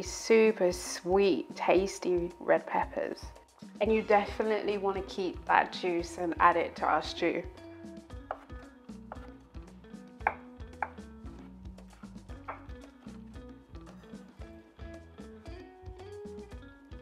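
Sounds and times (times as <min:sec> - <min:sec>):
knife chopping on wooden board: 0:08.2 - 0:09.4, 0:10.2 - 0:11.1, 0:11.8 - 0:13.2.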